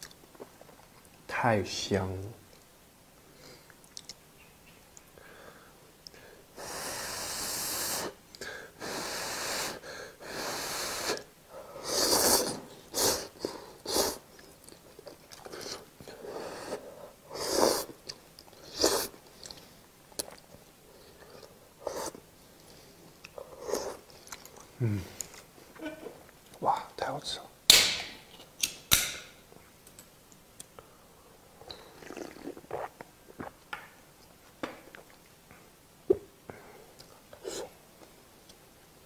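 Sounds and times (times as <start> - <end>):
slurping food: 11.0 - 14.2, 15.1 - 19.6, 31.7 - 33.5
chewing: 14.3 - 15.9, 18.0 - 25.5.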